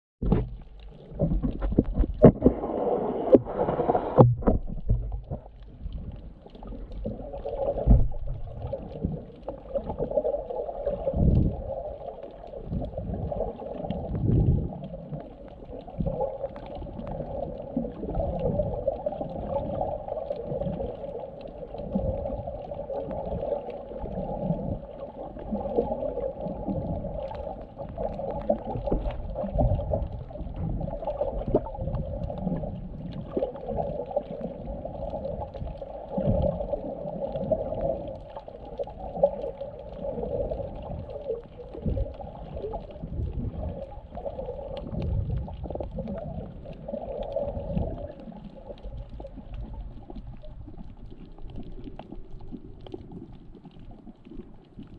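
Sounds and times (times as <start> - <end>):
low underwater thumps: 0.2 - 6.2, 7.8 - 9.2
underwater rush of water: 0.2 - 54.9.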